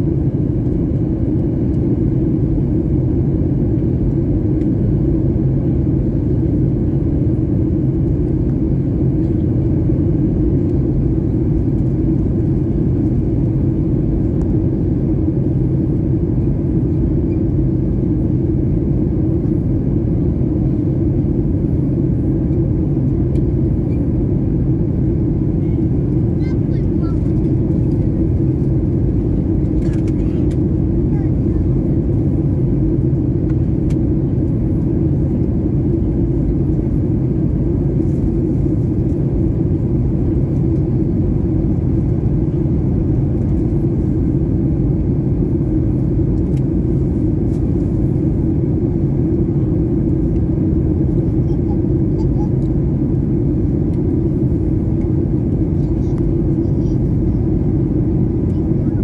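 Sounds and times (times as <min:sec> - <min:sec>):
airliner cabin engine rumble: 0:00.0 - 0:59.0.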